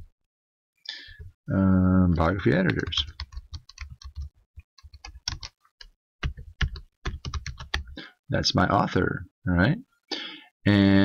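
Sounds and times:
computer keyboard typing: 2.5 - 8.0.

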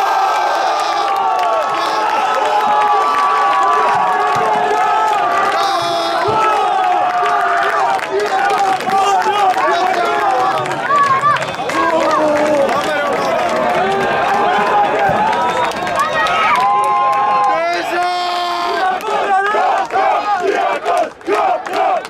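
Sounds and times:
crowd shouting and cheering: 0.0 - 22.0.

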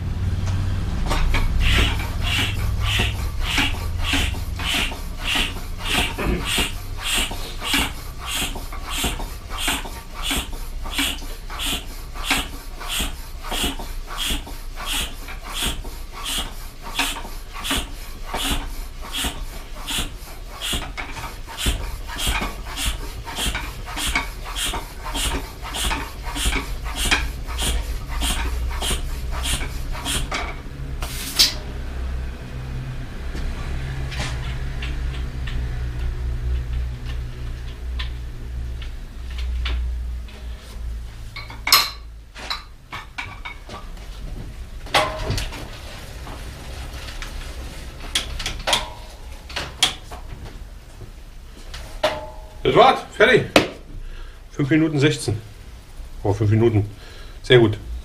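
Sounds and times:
bicycle hand pump strokes: 1.0 - 31.6.

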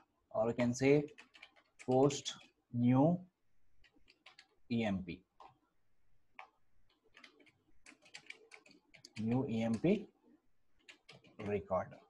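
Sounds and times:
computer keyboard keystrokes: 1.0 - 2.6, 3.8 - 4.6, 6.4 - 10.0, 10.8 - 12.0.

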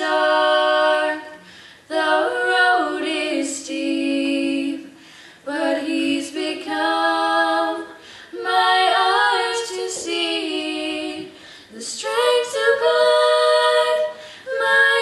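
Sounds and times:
girls singing a hymn a cappella: 0.0 - 15.0.

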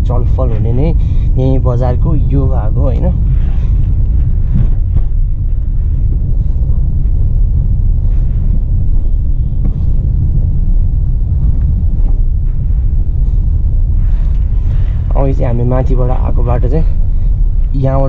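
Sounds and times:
car engine rumble: 0.0 - 18.0.

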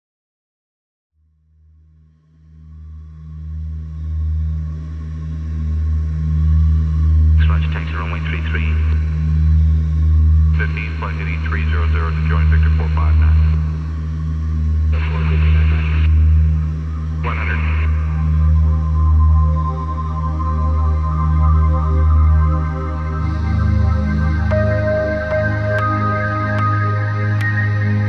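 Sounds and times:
deep steady drone: 1.8 - 28.0
radio voice chatter: 7.4 - 9.2, 10.5 - 13.7, 14.9 - 16.2, 17.2 - 18.2.

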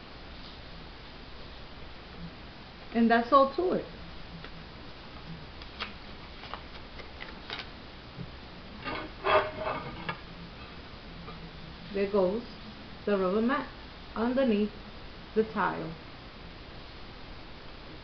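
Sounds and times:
woman's voice: 2.9 - 4.0, 11.9 - 14.8, 15.4 - 16.0.

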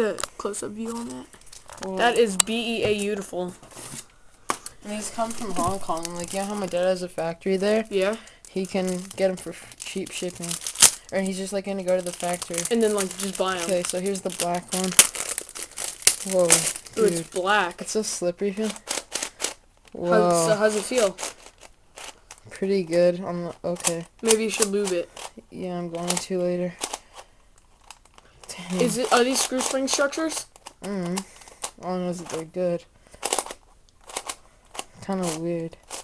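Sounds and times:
puzzle cube clacking turns: 0.0 - 20.0, 20.6 - 36.0
plastic packaging crinkling: 0.9 - 2.3, 3.8 - 7.0, 7.6 - 22.6, 26.8 - 31.7.

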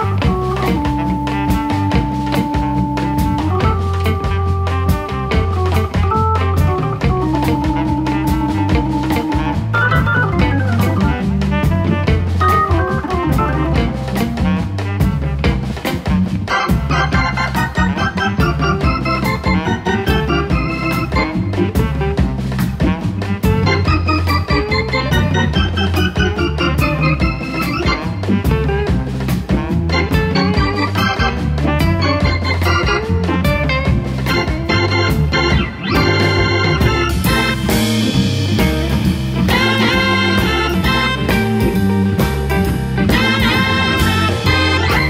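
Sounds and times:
bass line: 0.0 - 45.0
drum kit: 0.0 - 45.0
organ solo: 0.0 - 45.0.

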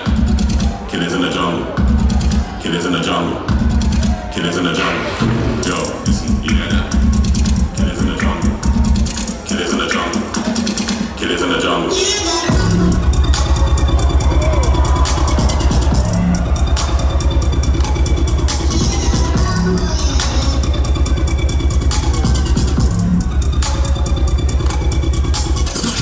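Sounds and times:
electronic dance music: 0.0 - 26.0
heavy sub-bass pulsing: 1.6 - 4.3, 5.2 - 11.2, 12.5 - 26.0.

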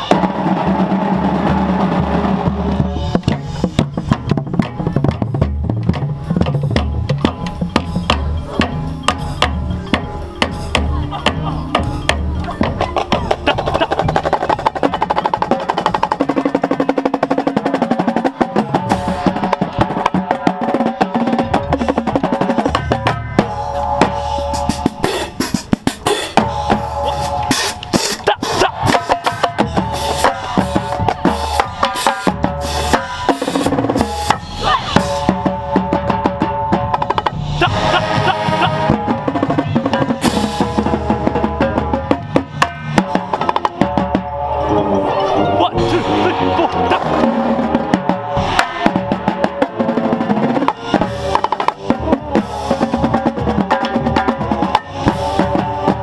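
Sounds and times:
snare drums: 0.0 - 44.4, 45.8 - 56.0
marching tenor drums: 0.0 - 45.0, 45.6 - 56.0.

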